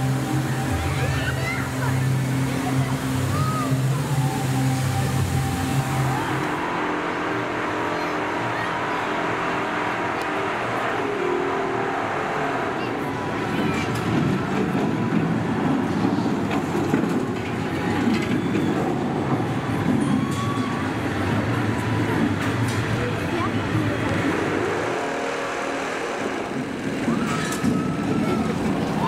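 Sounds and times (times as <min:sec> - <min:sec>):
roller coaster rumble: 0:00.0 - 0:29.0
visitors chattering: 0:00.0 - 0:29.0.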